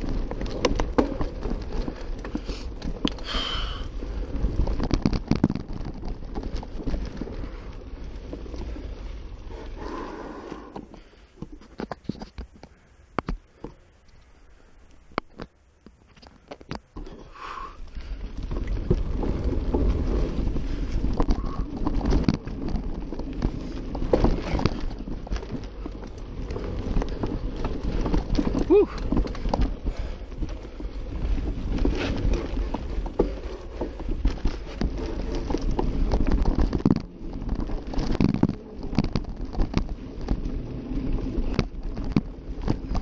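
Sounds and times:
bike clicking and rattling: 0.0s - 43.0s
bike tyres crunching on dirt: 0.0s - 43.0s.

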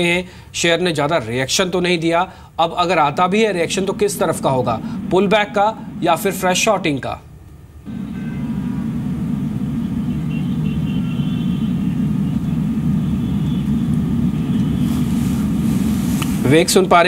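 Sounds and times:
low rumble on audio line: 2.0s - 17.0s.

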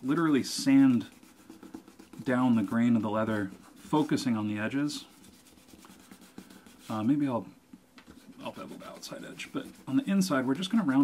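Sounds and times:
sandpaper rubbing leather: 0.0s - 7.2s, 8.1s - 11.0s.

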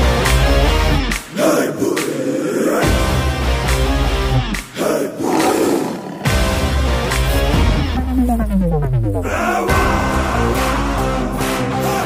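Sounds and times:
film music with heavy beat: 0.0s - 12.0s
loud roar sound effect: 4.8s - 7.0s, 8.0s - 11.0s.

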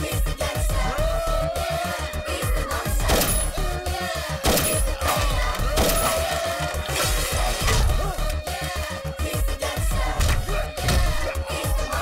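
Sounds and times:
action fight music with driving beat: 0.0s - 12.0s.

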